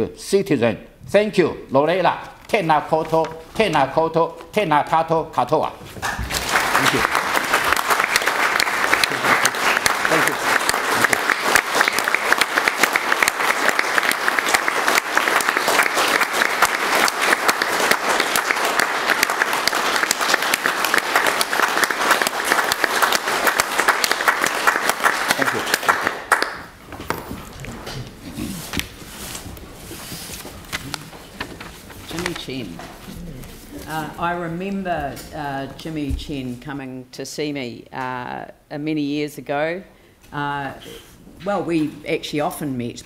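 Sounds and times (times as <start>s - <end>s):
crowd clapping: 5.9s - 26.8s.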